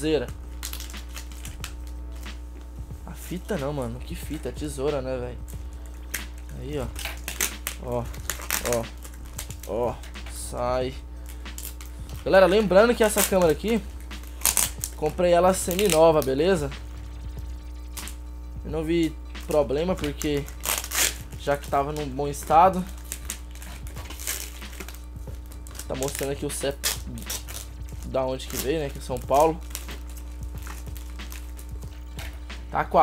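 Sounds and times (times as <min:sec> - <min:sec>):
packing tape crinkling: 0:00.0 - 0:02.6, 0:05.4 - 0:16.6, 0:19.1 - 0:33.0
steady low hum: 0:00.0 - 0:33.0.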